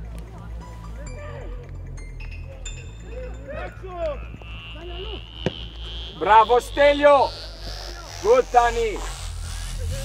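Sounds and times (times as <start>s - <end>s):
steady low rumble: 0.0s - 10.0s
distant shouts and calls: 2.7s - 9.2s
ball being kicked: 5.4s - 5.6s.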